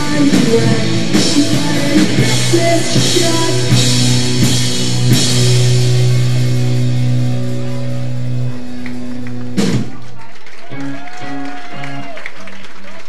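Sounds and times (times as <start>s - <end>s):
drum and cymbal hits: 0.0s - 8.2s
live rock band: 0.0s - 12.6s.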